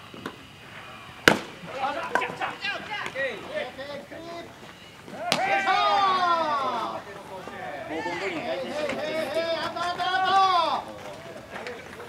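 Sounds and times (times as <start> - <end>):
players shouting: 0.7 - 12.0
bat cracking a baseball: 1.2 - 2.4, 5.1 - 5.7.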